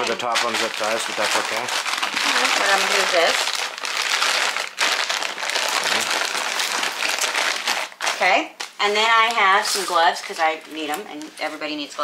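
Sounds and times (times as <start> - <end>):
plastic bags crinkling: 0.0 - 12.0.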